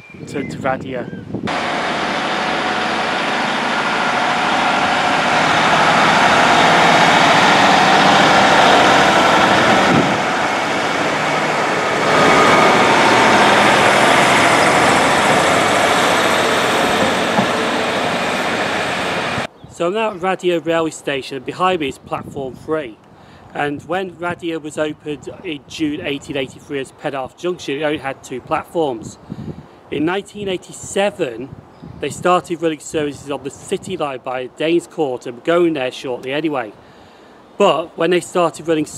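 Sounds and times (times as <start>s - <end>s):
diesel train passing: 1.5s - 19.5s.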